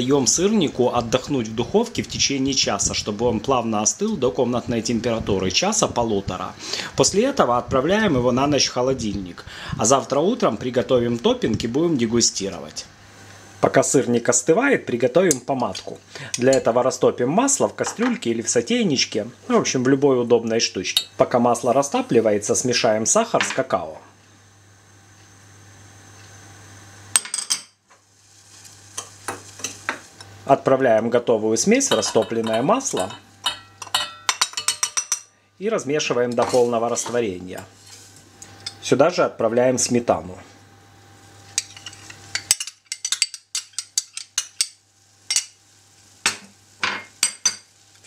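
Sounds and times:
faint stove hiss: 0:00.0 - 0:48.0
metal spoon clinking on bowl: 0:31.9 - 0:35.3.

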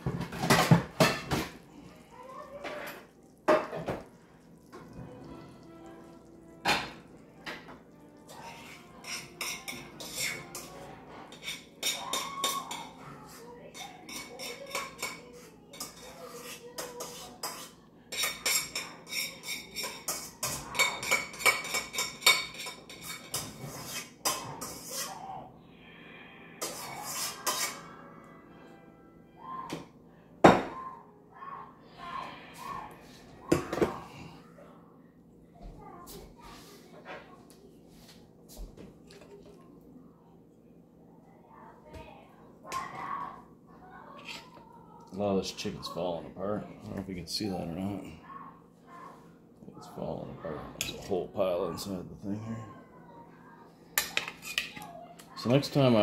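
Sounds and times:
dishes and cutlery clinking: 0:00.0 - 0:25.2, 0:26.6 - 0:28.0, 0:33.1 - 0:34.4, 0:44.2 - 0:44.7, 0:50.8 - 0:51.1, 0:54.0 - 0:55.6.

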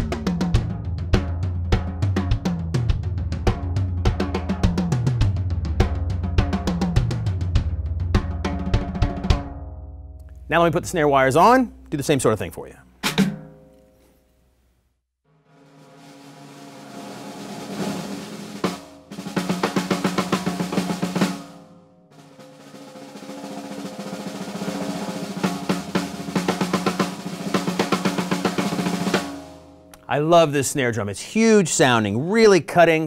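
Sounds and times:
snare drum roll and strokes: 0:15.5 - 0:29.7.

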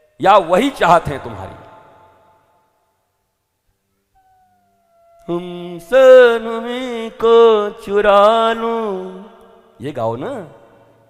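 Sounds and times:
faint held tone: 0:03.9 - 0:05.8.

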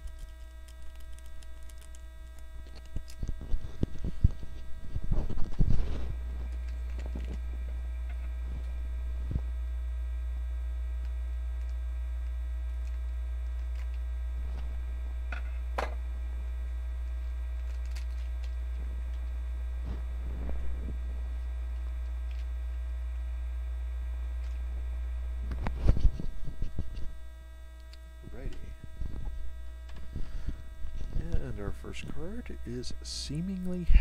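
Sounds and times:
rustling handling noise: 0:00.0 - 0:09.5
electrical mains hum: 0:00.0 - 0:34.0.

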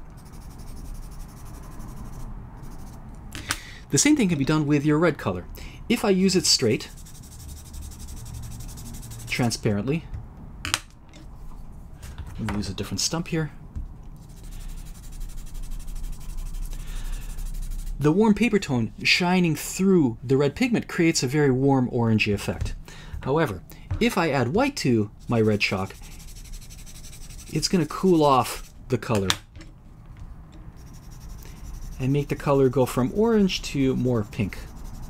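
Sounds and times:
chalk scratching on paper: 0:00.0 - 0:03.0, 0:06.2 - 0:09.6, 0:14.2 - 0:18.2, 0:24.8 - 0:28.8, 0:30.8 - 0:35.0.

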